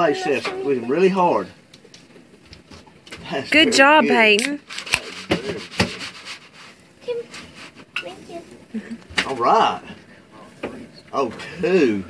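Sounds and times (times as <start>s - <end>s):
faint voices: 0.0s - 1.4s.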